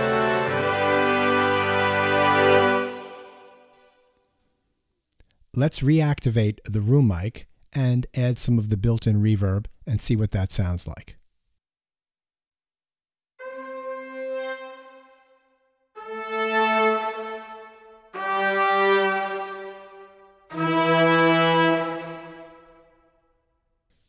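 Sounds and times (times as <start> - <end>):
brass ensemble long held notes: 0.0 - 4.0, 13.4 - 23.2.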